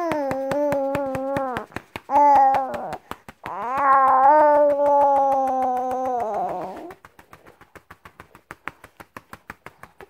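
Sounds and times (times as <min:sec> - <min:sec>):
baby crying: 0:00.0 - 0:06.9
quick pats on a back: 0:00.0 - 0:10.0.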